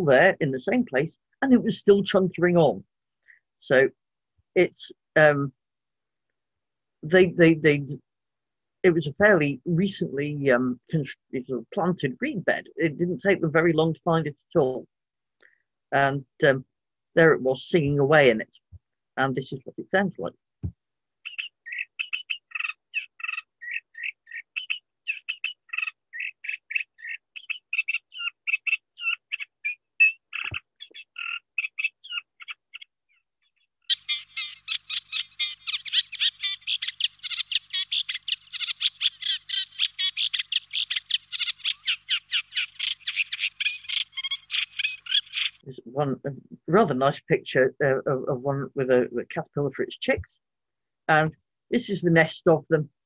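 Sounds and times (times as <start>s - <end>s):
reed warbler song: 21.2s - 45.9s.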